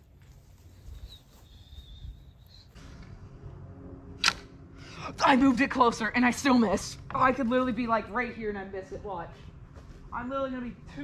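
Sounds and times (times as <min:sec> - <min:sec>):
longbow shot snap: 0:04.2 - 0:04.6.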